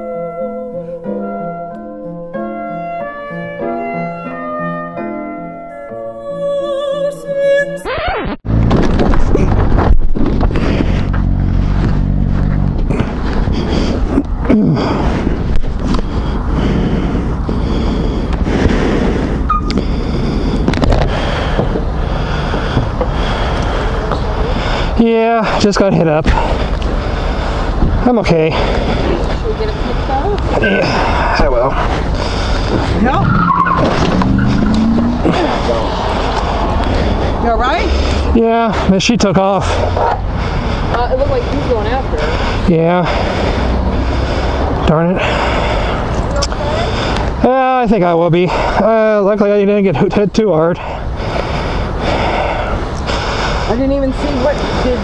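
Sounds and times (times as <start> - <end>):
road rumble: 2.5 - 55.0
traffic noise: 6.2 - 55.0
knocks and scrapes: 8.2 - 13.5, 32.0 - 37.1
wind rushing: 8.4 - 25.0, 26.3 - 47.4
vehicle engine humming: 8.4 - 55.0
heavy breathing inside helmet: 12.9 - 25.6, 26.3 - 33.1, 39.6 - 47.4, 50.8 - 55.0.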